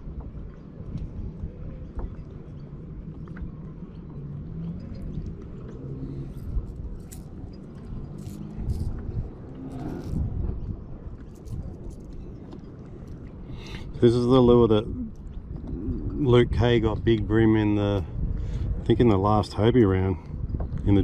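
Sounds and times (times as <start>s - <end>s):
low outdoor rumble: 0.0s - 21.0s.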